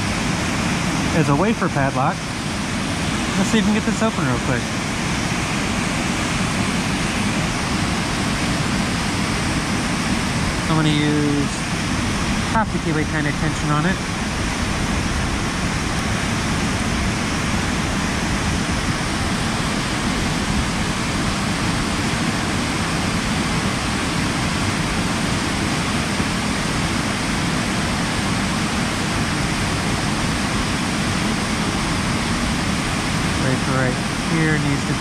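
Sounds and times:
waterfall rushing: 0.0s - 35.0s.

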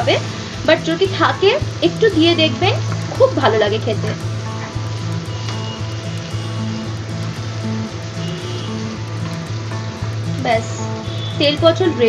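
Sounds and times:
background music melody: 0.0s - 12.0s
food frying in oil: 0.0s - 12.0s.

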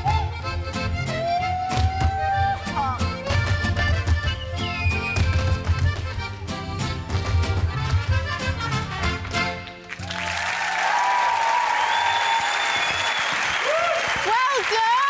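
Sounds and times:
mariachi band playing: 0.0s - 10.4s
audience applause and cheering: 9.7s - 15.0s.

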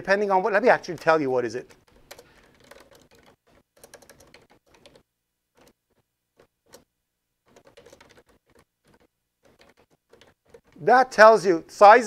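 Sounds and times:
typing on computer keyboard: 0.8s - 10.8s.

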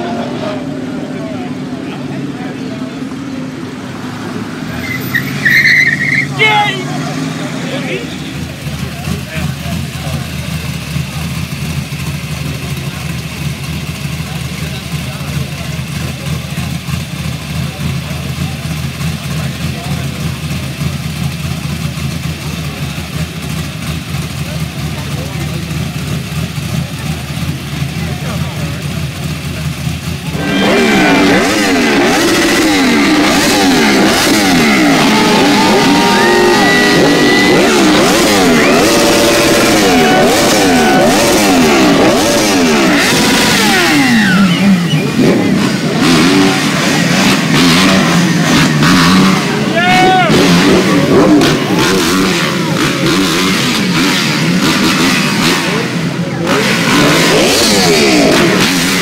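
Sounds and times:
sport bike engines revving: 0.0s - 59.0s
car engine at low revs: 6.4s - 59.0s.

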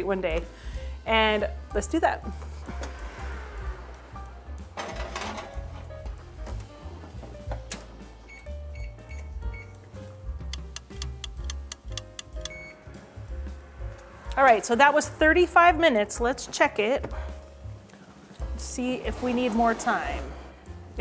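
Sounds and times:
background music: 0.0s - 21.0s
oven keypad beeping: 8.2s - 9.8s, 11.2s - 12.8s.

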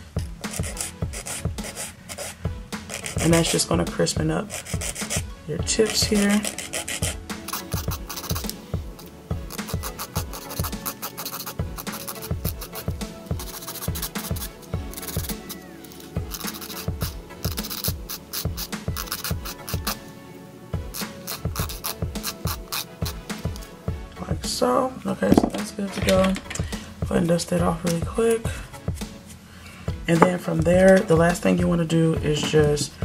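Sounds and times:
background music: 0.0s - 33.0s
nail file scratching: 0.4s - 3.6s, 4.4s - 20.0s, 20.9s - 23.7s.

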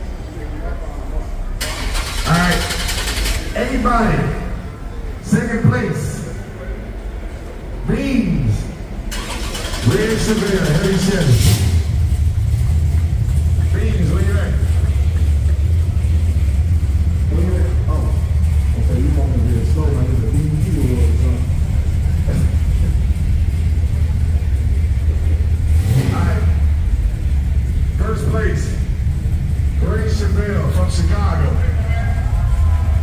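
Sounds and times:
people talking: 0.0s - 11.6s, 13.6s - 33.0s
car engine starting and idling: 0.0s - 33.0s.

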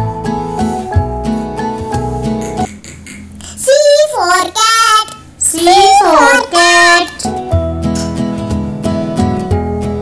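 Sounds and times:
child singing: 3.6s - 7.3s.

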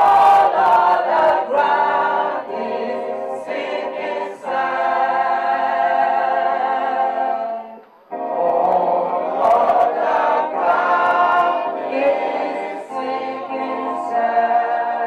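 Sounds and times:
congregation singing a hymn: 0.0s - 15.0s.

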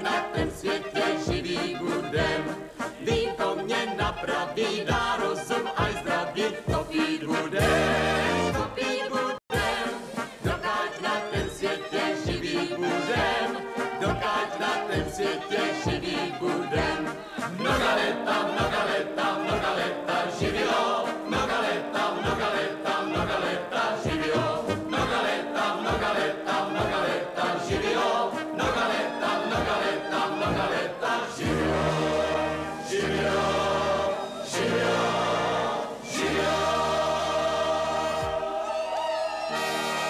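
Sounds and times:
brass band playing: 0.0s - 40.0s
group singing: 0.0s - 40.0s.

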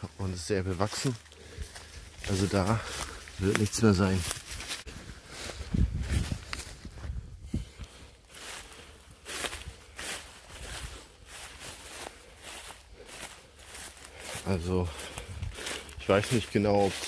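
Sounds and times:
footsteps through undergrowth: 0.0s - 17.0s
plants rustling: 0.0s - 17.0s.

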